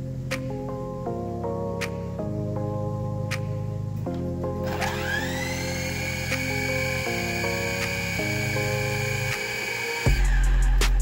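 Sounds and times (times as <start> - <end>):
background music: 0.0 - 11.0
drone propellers whining: 4.6 - 10.8.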